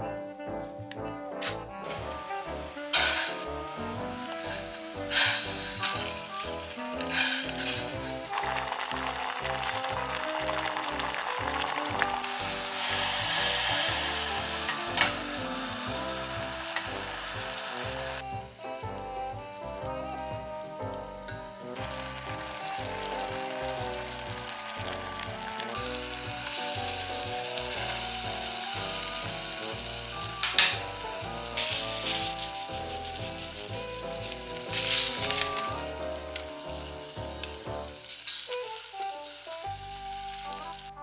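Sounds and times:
background music: 0:00.0 - 0:41.0
food sizzling in a saucepan: 0:01.8 - 0:19.0, 0:19.6 - 0:41.0
stirring in a pan: 0:01.9 - 0:18.2, 0:21.3 - 0:40.8.

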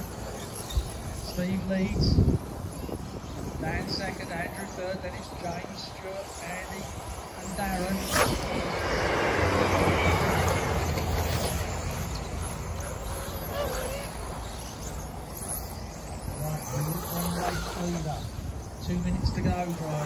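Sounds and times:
electric toy cars racing: 0:00.0 - 0:20.0.

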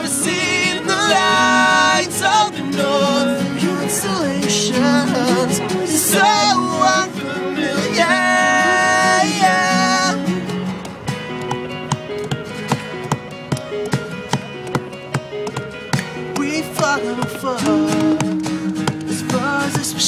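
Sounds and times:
person singing: 0:00.0 - 0:10.2, 0:16.3 - 0:20.0
acoustic guitars picking: 0:00.0 - 0:20.0.

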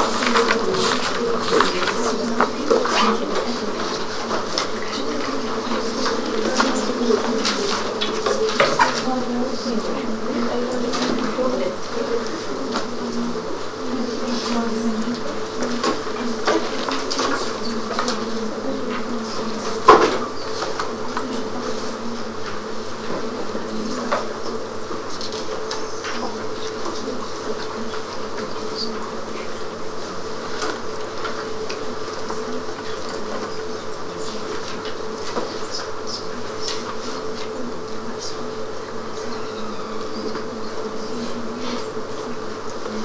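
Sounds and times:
steady electrical buzz: 0:00.0 - 0:43.0.

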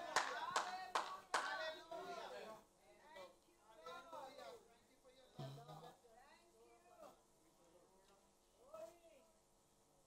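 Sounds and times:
hands clapping in rhythm: 0:00.0 - 0:01.7.

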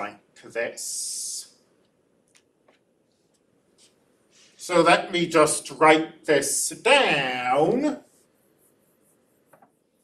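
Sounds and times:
stylus scratching on tablet screen: 0:07.1 - 0:10.0.

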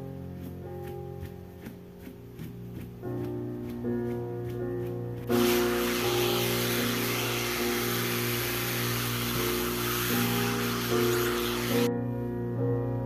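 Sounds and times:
background music: 0:00.0 - 0:13.0
hair dryer blowing: 0:05.3 - 0:11.9.

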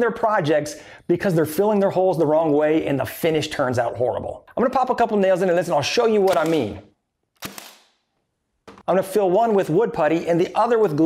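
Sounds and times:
nail gun firing: 0:06.3 - 0:06.8, 0:07.4 - 0:08.0.

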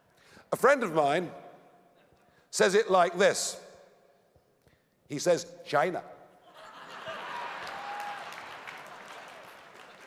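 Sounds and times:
audience applauding: 0:07.1 - 0:10.0.

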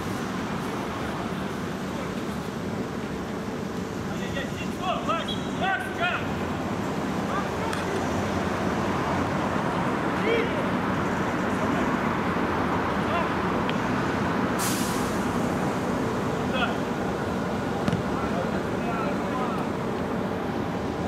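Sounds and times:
hissing burst: 0:14.6 - 0:15.4.

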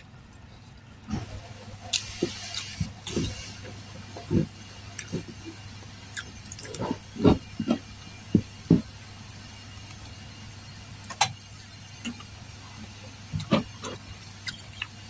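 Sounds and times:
steady high hiss: 0:01.1 - 0:15.0.

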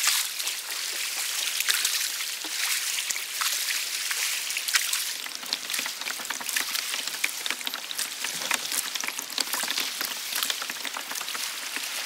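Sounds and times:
water splashing and lapping: 0:00.0 - 0:12.0.

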